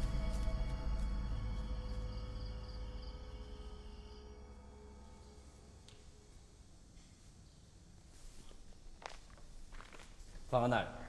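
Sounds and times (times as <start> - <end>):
dramatic score sustained tones: 0.0 - 6.8.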